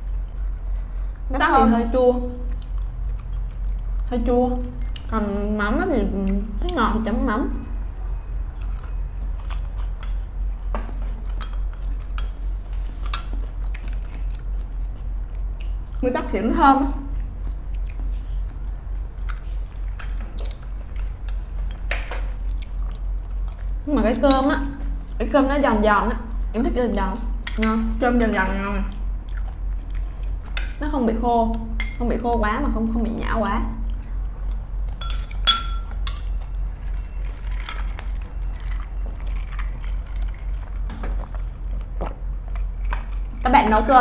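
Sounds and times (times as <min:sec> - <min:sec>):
steady low hum: 0:00.0 - 0:44.0
eating sounds: 0:02.3 - 0:05.2, 0:12.8 - 0:16.1, 0:16.8 - 0:23.9, 0:28.8 - 0:30.6, 0:36.0 - 0:44.0
person chewing food: 0:02.5 - 0:04.1, 0:08.0 - 0:16.0, 0:17.1 - 0:23.8, 0:28.9 - 0:30.7, 0:33.8 - 0:43.4
utensils clinking against tableware: 0:31.8 - 0:32.0, 0:35.0 - 0:36.4.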